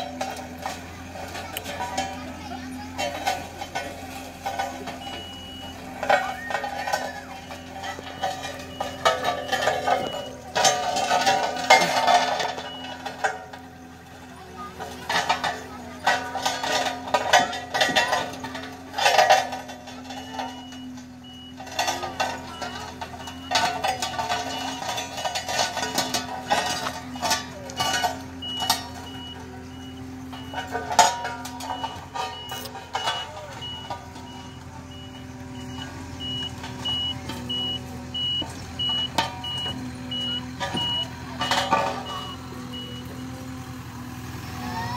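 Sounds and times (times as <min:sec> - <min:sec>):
people chattering loudly: 0:00.0 - 0:44.9
road roller diesel engine running: 0:00.0 - 0:44.9
reversing alarm beeping: 0:04.4 - 0:13.3, 0:19.9 - 0:43.5.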